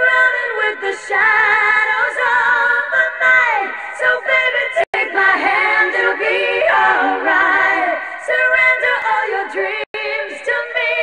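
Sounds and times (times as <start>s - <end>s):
woman singing pop song: 0.0s - 11.0s.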